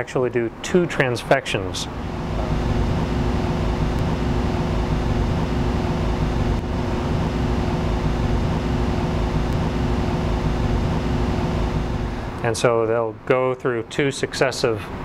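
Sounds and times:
machine hum: 0:01.6 - 0:12.8
rushing air from ventilation: 0:01.8 - 0:12.6.

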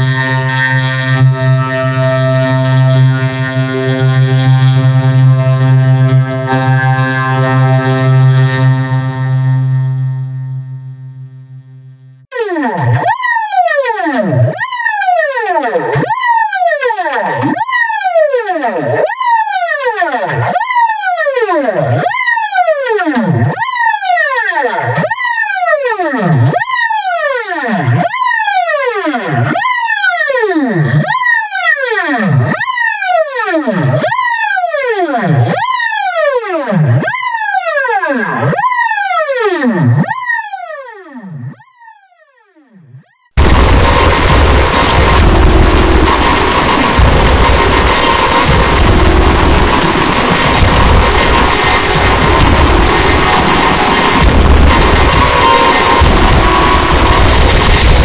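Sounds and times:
electronic drone: 0:00.0 - 0:19.4, 0:43.3 - 0:58.0
swooping electronic tone: 0:00.0 - 0:21.3, 0:43.4 - 0:58.0.

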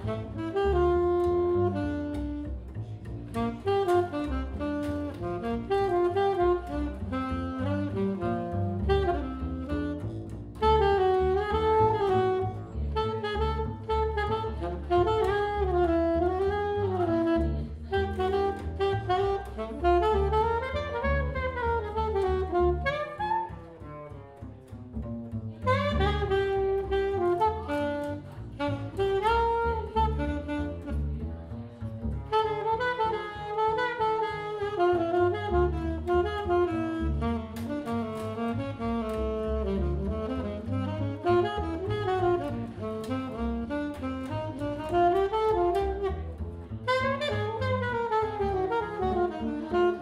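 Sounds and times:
alto saxophone swinging melody: 0:00.0 - 0:50.0
plucked upright bass: 0:00.0 - 0:50.0.

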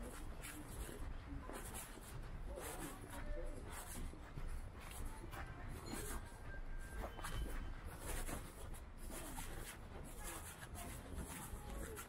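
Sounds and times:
footsteps on wet paving: 0:00.0 - 0:12.0
street background haze: 0:00.0 - 0:12.0.

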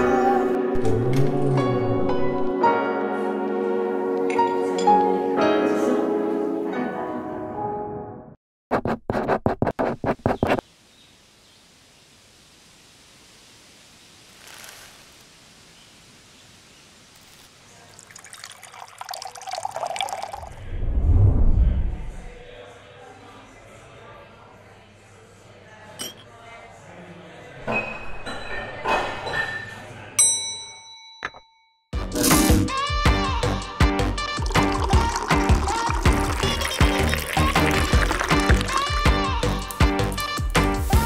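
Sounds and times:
pen scratching on paper: 0:08.7 - 0:10.6
faint steady hiss: 0:10.6 - 0:18.7
tableware clinking: 0:26.0 - 0:26.3, 0:27.7 - 0:31.5
ringing ding: 0:30.2 - 0:31.9.

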